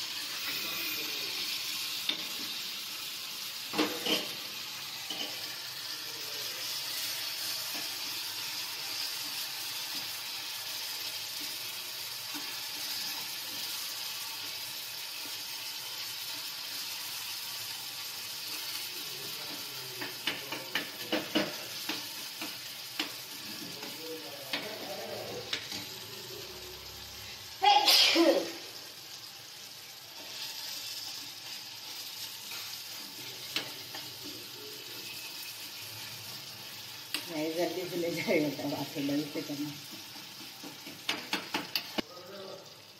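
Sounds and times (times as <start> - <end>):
sauce sizzling in a pan: 0.0 - 42.9
spoon scraping a pan: 3.7 - 6.0, 30.1 - 37.3, 39.8 - 42.0.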